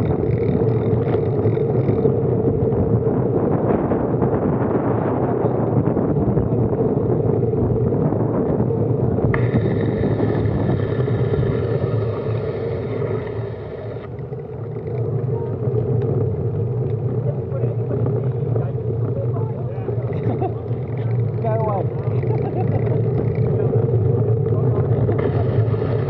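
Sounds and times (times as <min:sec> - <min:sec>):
wind and road noise rumble: 0:00.0 - 0:26.0
indistinct voices: 0:09.3 - 0:26.0.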